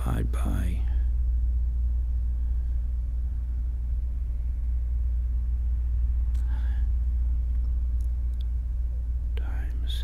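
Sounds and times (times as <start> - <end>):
steady deep hum: 0.0 - 10.0
faint clicks: 7.5 - 8.6.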